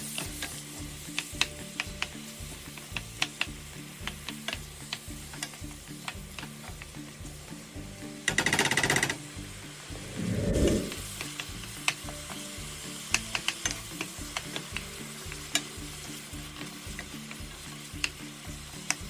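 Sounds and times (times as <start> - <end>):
meat and onions sizzling: 0.0 - 8.4, 9.2 - 19.0
wooden spoon clicking on pan: 0.1 - 6.9, 11.1 - 12.4, 13.0 - 15.7, 16.5 - 18.2
low rumble: 9.9 - 11.0.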